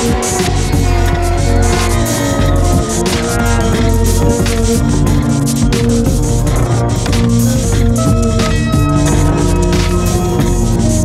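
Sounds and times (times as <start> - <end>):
electronic drum beat: 0.0 - 11.0
sliding synthesizer tones: 0.0 - 11.0.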